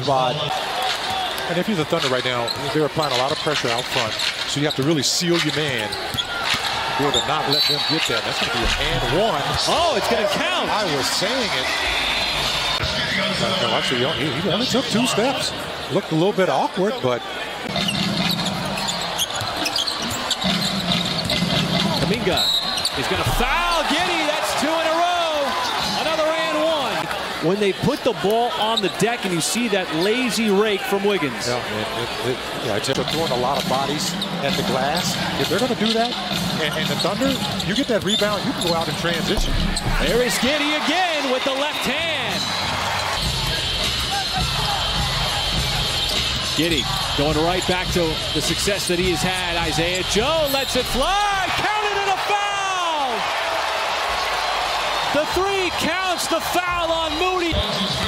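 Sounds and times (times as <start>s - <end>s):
arena crowd cheering: 0.0s - 4.0s, 4.9s - 58.0s.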